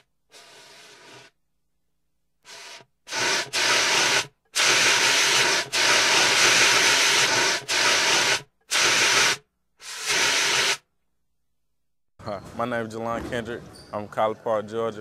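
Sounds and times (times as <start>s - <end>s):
static hiss bursts: 0.0s - 1.4s, 2.4s - 10.9s.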